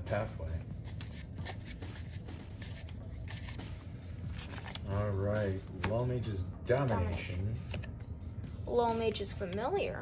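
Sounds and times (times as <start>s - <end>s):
steady low hum: 0.0s - 10.0s
playing cards swishing: 0.8s - 4.9s.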